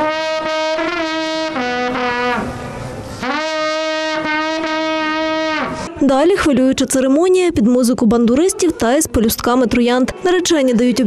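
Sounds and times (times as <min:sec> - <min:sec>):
long wooden horn calls: 0:00.0 - 0:06.0.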